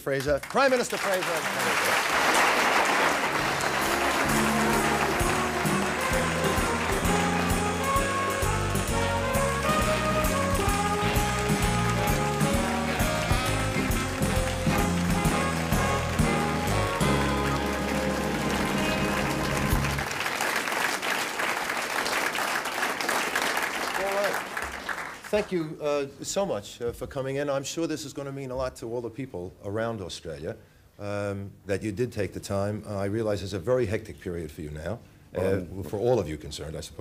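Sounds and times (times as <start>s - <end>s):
audience applause: 0.2s - 25.6s
band playing walk-on music: 2.9s - 20.1s.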